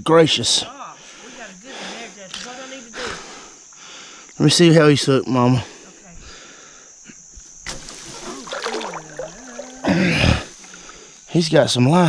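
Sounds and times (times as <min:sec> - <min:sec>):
water sloshing against boat: 0:07.6 - 0:11.2
fish thrashing splash: 0:07.7 - 0:10.0.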